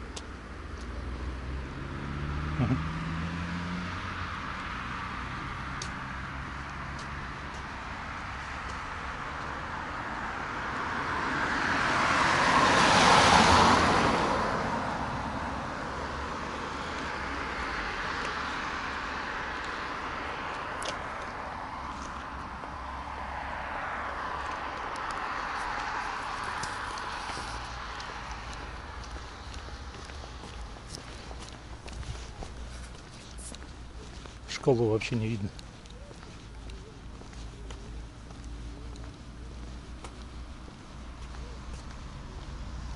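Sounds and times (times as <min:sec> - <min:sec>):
passing traffic: 0:00.0 - 0:42.9
car passing on wet road: 0:00.9 - 0:35.5, 0:37.4 - 0:42.9.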